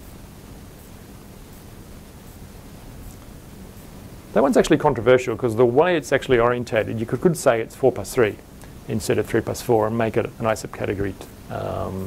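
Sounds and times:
background hiss: 0:00.0 - 0:12.0
faint low hum: 0:00.0 - 0:12.0.

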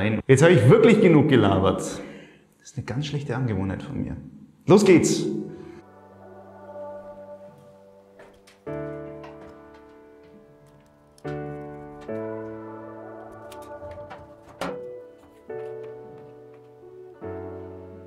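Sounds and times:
piano chords ringing out: 0:05.0 - 0:18.0.

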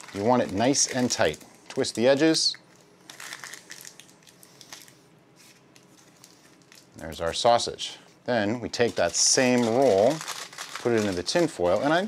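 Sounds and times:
parchment paper crinkling: 0:00.0 - 0:02.2, 0:03.1 - 0:07.5, 0:08.7 - 0:12.0.

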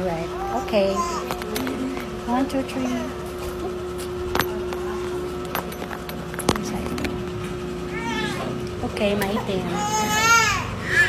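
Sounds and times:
background hum: 0:00.0 - 0:11.0.

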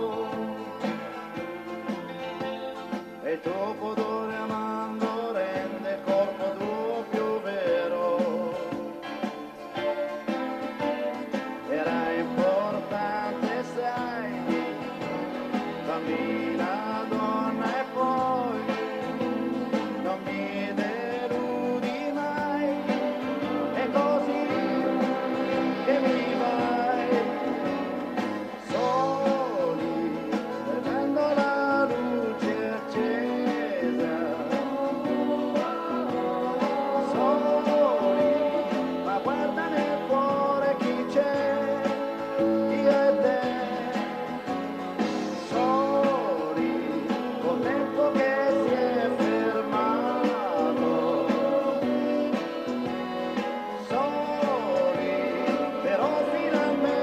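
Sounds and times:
live pop band music: 0:00.0 - 0:57.0
man singing: 0:00.0 - 0:57.0.

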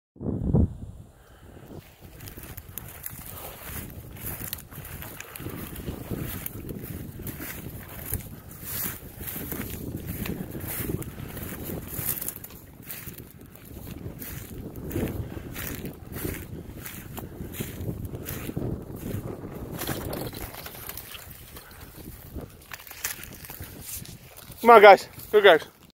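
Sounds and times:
wind rumbling on microphone: 0:00.2 - 0:25.9
footsteps rustling through dry grass: 0:01.4 - 0:25.9
twigs crackling: 0:01.7 - 0:25.9.

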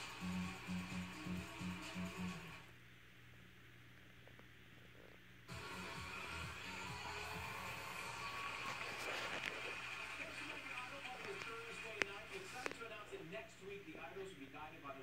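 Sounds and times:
television show music: 0:00.0 - 0:02.7, 0:05.5 - 0:15.0.

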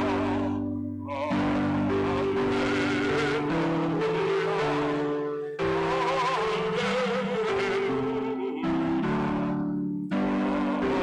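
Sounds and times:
organ sustained chords: 0:00.0 - 0:11.0
person singing with vibrato: 0:00.0 - 0:11.0.

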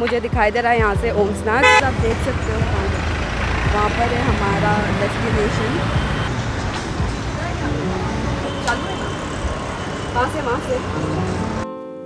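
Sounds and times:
road noise: 0:00.0 - 0:11.6
vehicles driving past: 0:00.0 - 0:11.6.

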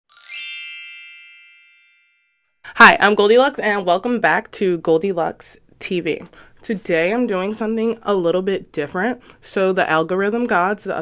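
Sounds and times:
bright chime with shimmer: 0:00.1 - 0:02.4.

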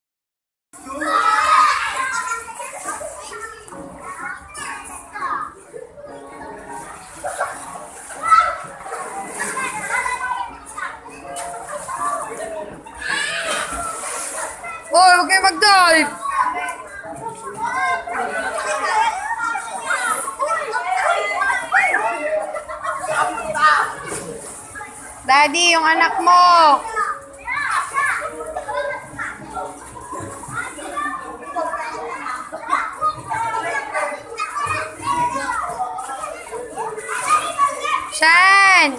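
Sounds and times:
children shouting and chattering: 0:00.8 - 0:38.9.

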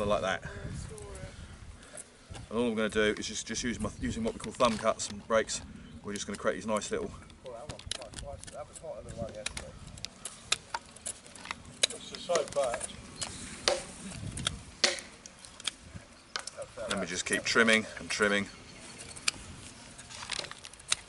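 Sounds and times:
knife whittling wood clicks: 0:09.3 - 0:17.1, 0:20.3 - 0:21.0.

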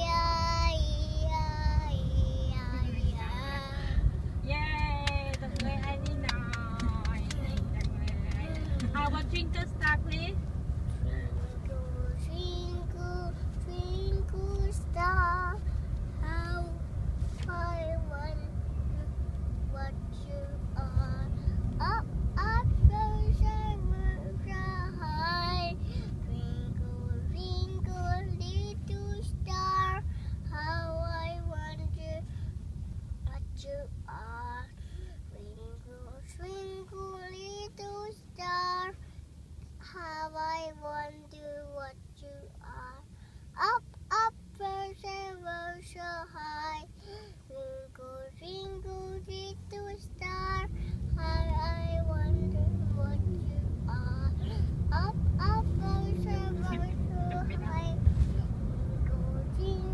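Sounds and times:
young child singing: 0:00.0 - 0:04.0, 0:11.0 - 0:32.2, 0:39.8 - 0:43.0, 0:43.6 - 0:59.9
car cabin rumble: 0:00.0 - 0:59.9
boy singing: 0:47.5 - 0:59.9.

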